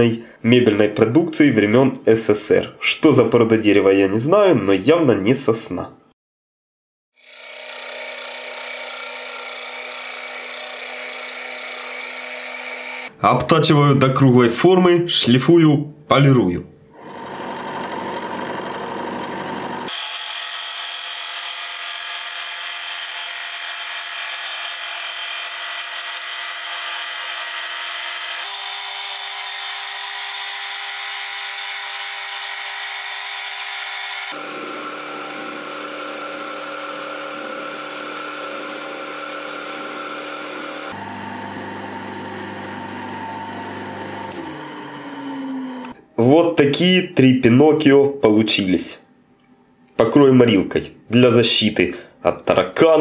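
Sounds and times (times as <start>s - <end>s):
lathe machine hum: 7.2s - 13.1s, 17.0s - 46.0s
wood cutting and sanding: 7.2s - 13.2s, 17.0s - 46.0s.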